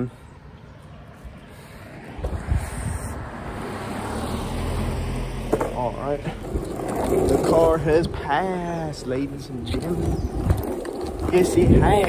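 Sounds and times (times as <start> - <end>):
car passing: 0.0 - 12.0
longboard wheels rolling on asphalt: 0.0 - 12.0.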